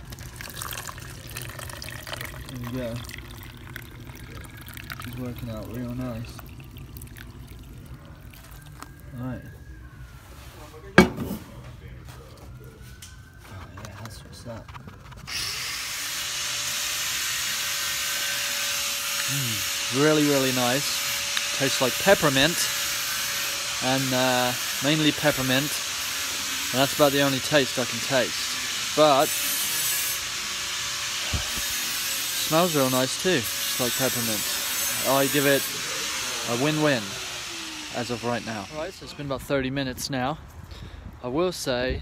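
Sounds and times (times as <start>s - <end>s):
kitchenware knock: 11.0s - 11.4s.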